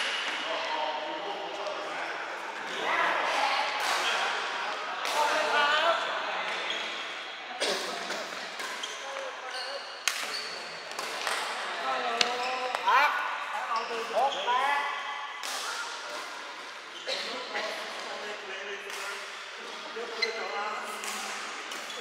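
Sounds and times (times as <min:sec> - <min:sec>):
shoes squeaking on court floor: 0:08.3 - 0:13.0, 0:13.6 - 0:14.8, 0:19.6 - 0:22.0.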